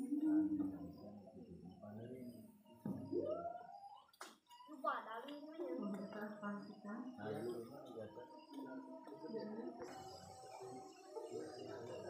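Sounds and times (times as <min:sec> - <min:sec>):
people talking: 0:00.0 - 0:03.4, 0:04.7 - 0:12.0.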